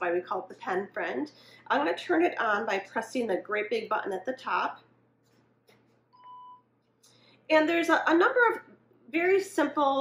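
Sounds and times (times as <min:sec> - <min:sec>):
short steady beep: 0:06.2 - 0:06.7.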